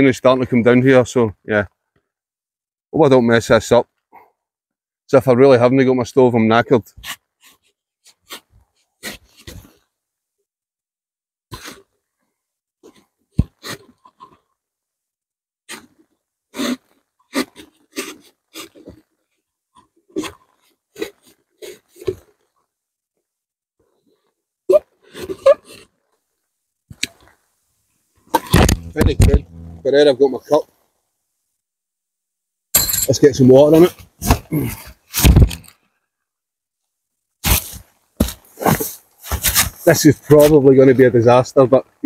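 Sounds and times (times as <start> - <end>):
knife cutting cardboard tube: 7.0 - 9.6, 28.3 - 29.9, 34.2 - 35.7, 37.4 - 40.5.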